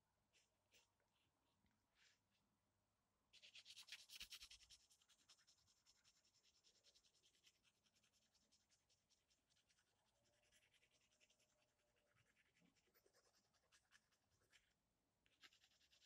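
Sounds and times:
pencil scratching on paper: 3.4s - 16.0s.

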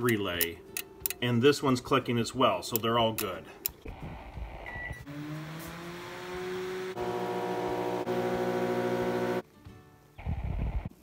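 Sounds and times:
microwave motor humming: 3.9s - 9.4s
microwave keypad beep: 4.7s - 5.0s
loud electrical buzz: 5.1s - 9.4s.

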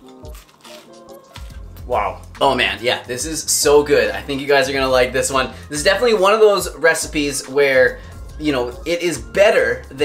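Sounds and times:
man chewing a sandwich: 0.0s - 1.8s
background music with held tones: 0.0s - 10.0s.

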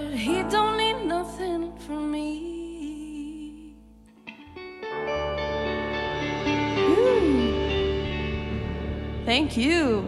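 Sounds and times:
guitar notes ringing: 4.1s - 10.0s.

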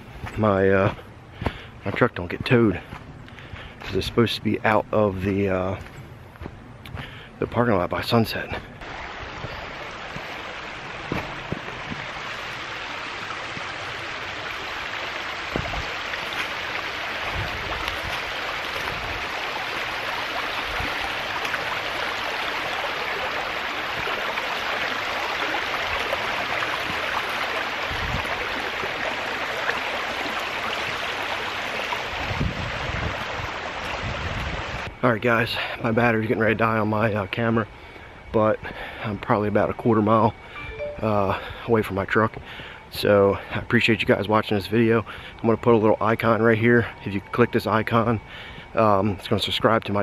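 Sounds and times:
creek water rushing over rocks: 8.8s - 34.9s.

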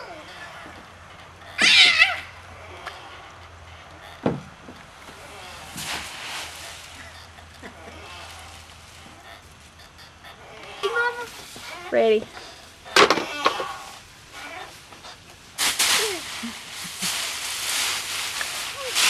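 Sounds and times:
child squealing: 1.6s - 2.3s
dry leaves rustling: 5.0s - 9.8s, 10.6s - 19.0s.

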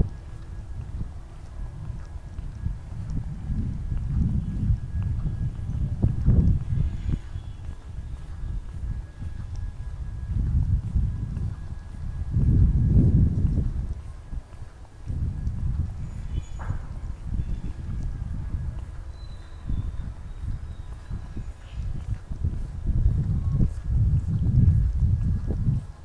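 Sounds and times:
footsteps: 0.0s - 26.0s
wind gusts on microphone: 0.0s - 26.0s.

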